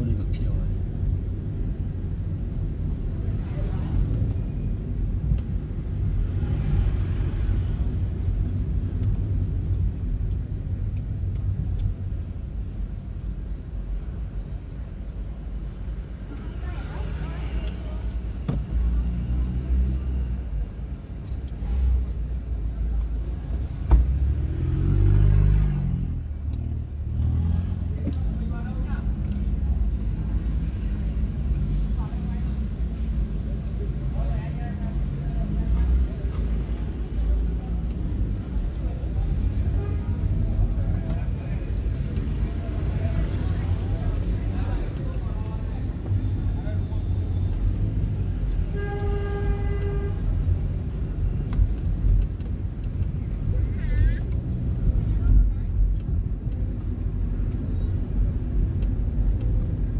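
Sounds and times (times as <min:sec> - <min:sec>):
car engine rumble and road noise: 0:00.0 - 0:59.9.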